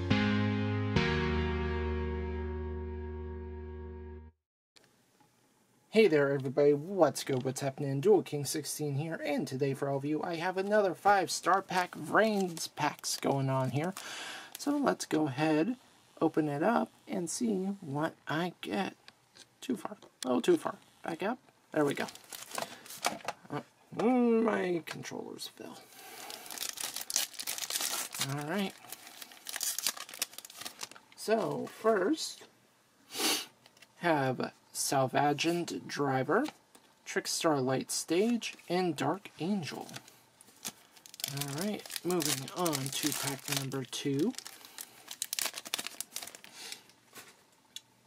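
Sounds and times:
foil wrappers crinkling: 11.4s - 15.0s, 21.8s - 23.3s, 26.0s - 31.8s, 39.6s - 47.5s.

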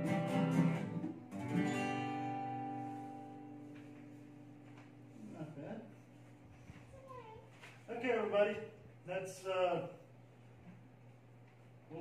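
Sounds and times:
acoustic guitar chord ringing: 0.0s - 4.7s.

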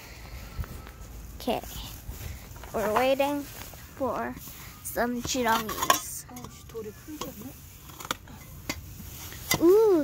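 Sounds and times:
child murmuring: 9.6s - 10.0s.

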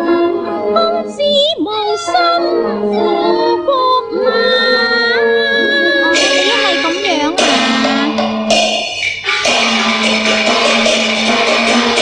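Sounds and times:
sustained instrumental accompaniment: 2.2s - 12.0s.

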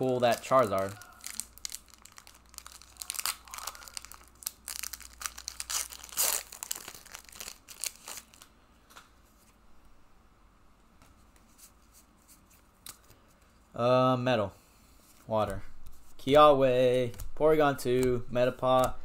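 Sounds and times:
foil wrapper tearing and crinkling: 0.2s - 8.5s.

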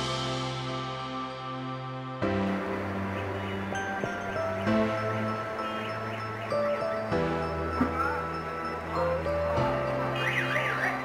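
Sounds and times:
sustained music chords: 0.0s - 11.0s.

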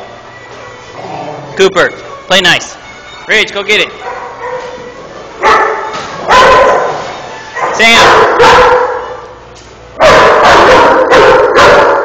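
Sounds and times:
dog barking: 4.0s - 4.8s, 5.4s - 7.0s, 7.6s - 9.2s, 10.0s - 12.0s.

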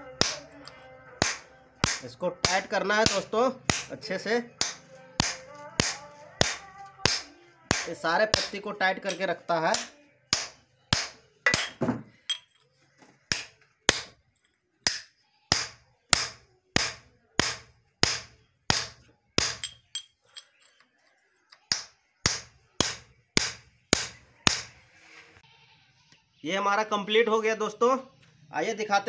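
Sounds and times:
hammer striking metal: 1.2s - 3.9s, 9.8s - 12.5s, 14.9s - 20.1s.

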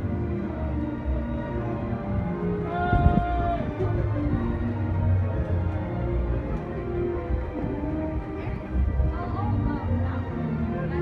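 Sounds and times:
parade music over loudspeakers: 0.0s - 11.0s.

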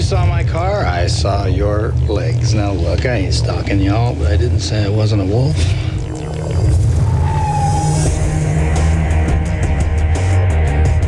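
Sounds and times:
loud rock music with heavy bass: 0.0s - 11.0s.

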